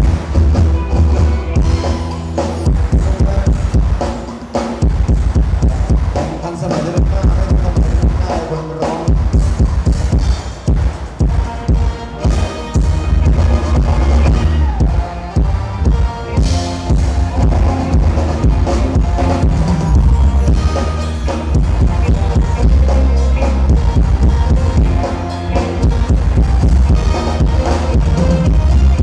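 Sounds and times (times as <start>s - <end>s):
drum kit and bass beat: 0.0s - 29.0s
live band dance music: 0.0s - 29.0s
person singing: 0.7s - 4.8s, 5.5s - 10.3s, 11.4s - 29.0s.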